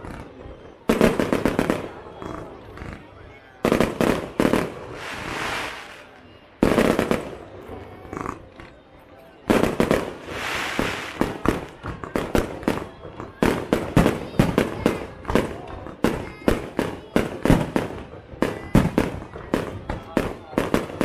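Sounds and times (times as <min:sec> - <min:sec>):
firework hiss: 0:04.7 - 0:06.2, 0:10.0 - 0:11.7
firework shells bursting: 0:10.2 - 0:11.8.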